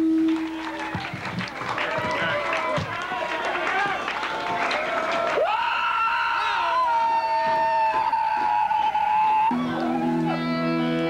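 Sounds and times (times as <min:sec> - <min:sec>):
crowd shouting and calling: 0:00.4 - 0:11.0.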